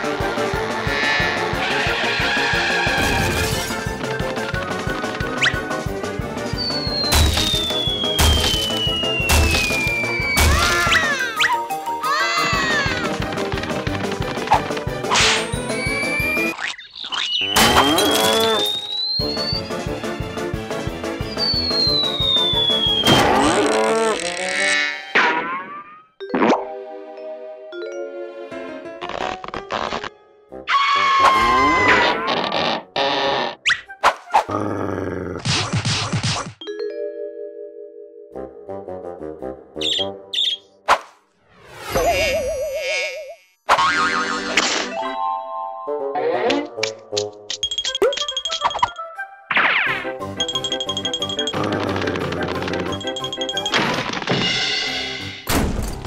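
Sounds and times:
background music: 0:00.0 - 0:16.6, 0:17.4 - 0:25.4, 0:26.2 - 0:32.9, 0:36.6 - 0:40.8, 0:43.8 - 0:56.0.

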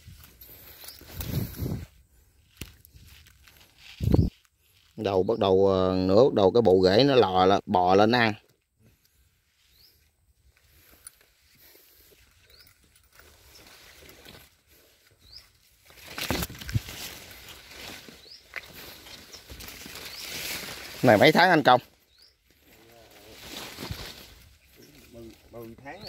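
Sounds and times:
soft rustling and handling noise: 0:00.0 - 0:05.1.

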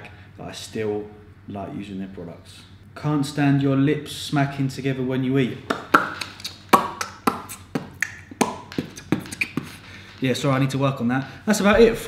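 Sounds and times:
wet lip smacks: 0:06.0 - 0:08.3.

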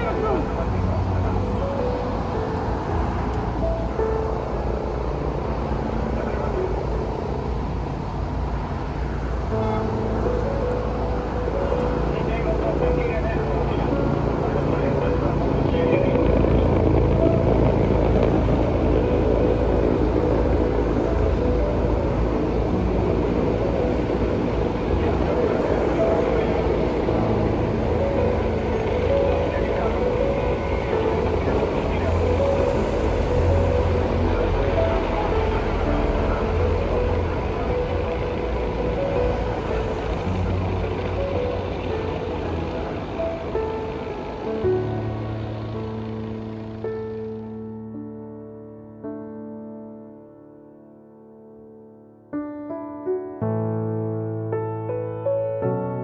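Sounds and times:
vehicle noise: 0:00.0 - 0:47.9.

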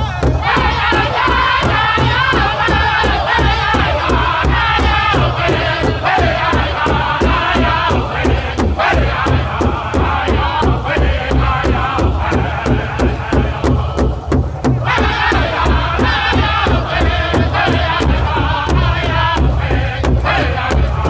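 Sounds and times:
large hide drum beating: 0:00.0 - 0:21.0
men singing together: 0:00.0 - 0:21.0.

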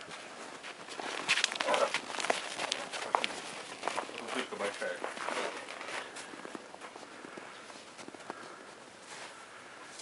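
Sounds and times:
footsteps crunching on snow: 0:00.0 - 0:10.0.

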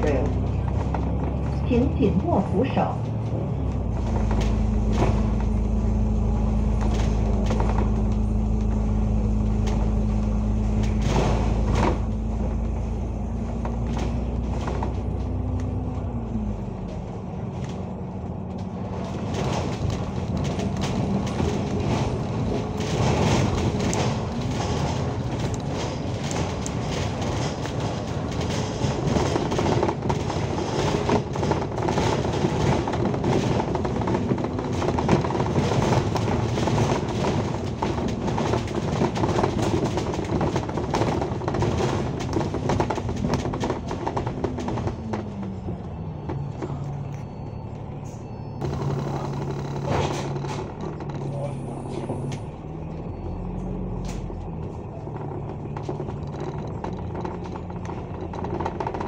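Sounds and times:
bus body rattles and knocks: 0:00.0 - 0:59.0
bus engine humming: 0:00.0 - 0:59.0.

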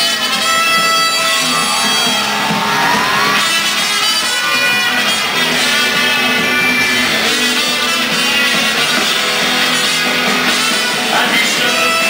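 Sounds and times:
drums: 0:00.0 - 0:12.0
electric guitars: 0:00.0 - 0:12.0
gliding guitar note: 0:00.2 - 0:12.0.

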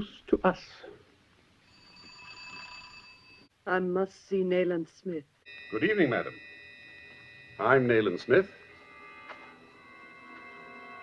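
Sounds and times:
high bell-like ringing tone: 0:01.6 - 0:03.5, 0:05.5 - 0:11.0.

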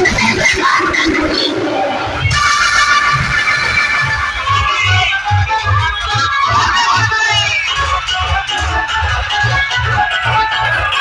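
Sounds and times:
loud dance music with bass beats: 0:00.0 - 0:11.0.

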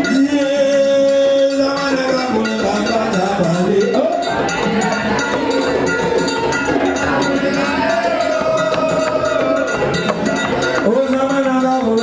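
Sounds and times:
fast rattling percussion: 0:00.0 - 0:12.0
group of voices chanting: 0:03.8 - 0:11.1.

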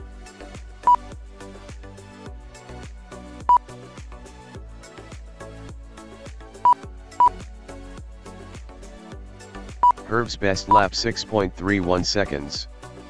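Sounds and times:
background music with steady beat: 0:00.0 - 0:13.0
lap timer beeps: 0:09.8 - 0:10.0.

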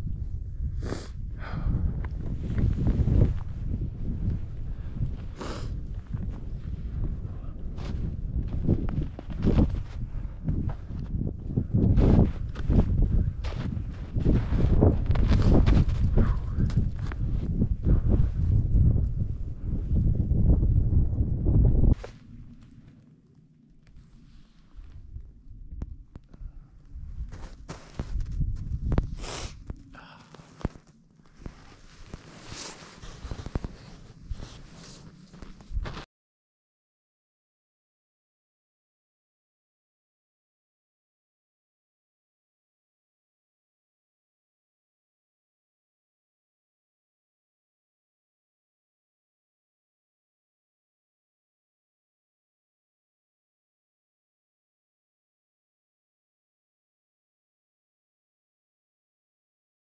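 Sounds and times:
wind buffeting microphone: 0:00.0 - 0:22.6, 0:24.8 - 0:29.9.

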